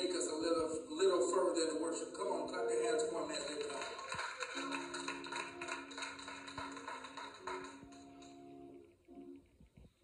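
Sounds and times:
rhythmic hand clapping: 0:02.5 - 0:08.5.

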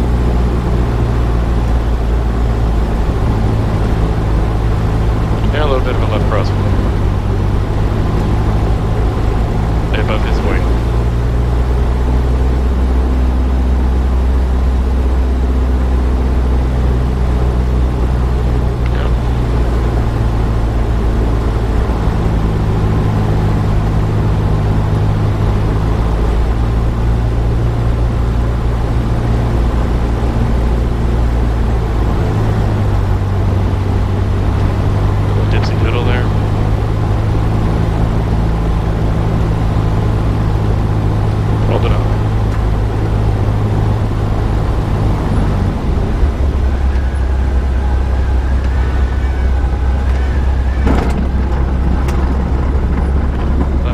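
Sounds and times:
aircraft engine droning in cabin: 0:00.0 - 0:53.9.

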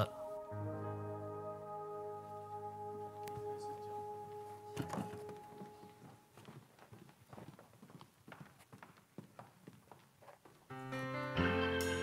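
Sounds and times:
footsteps on wooden stage floor: 0:04.3 - 0:10.7.

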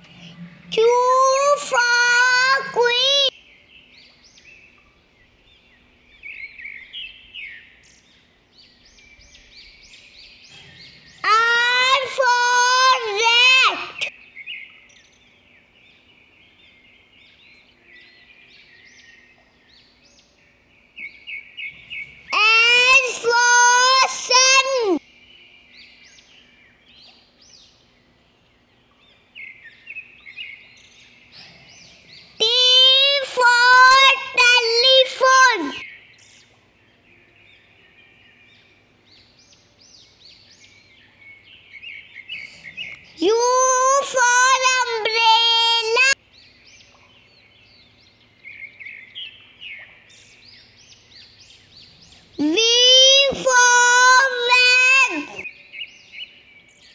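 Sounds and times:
faint bird chirping: 0:00.0 - 0:56.9
child singing: 0:00.7 - 0:03.3, 0:11.2 - 0:14.1, 0:22.4 - 0:25.0, 0:32.4 - 0:35.8, 0:43.2 - 0:46.2, 0:52.4 - 0:55.4.

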